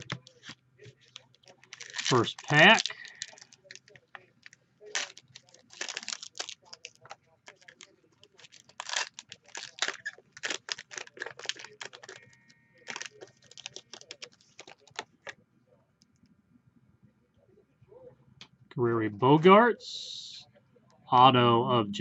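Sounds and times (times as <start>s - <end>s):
foil wrapper crinkling and tearing: 0.0s - 15.3s.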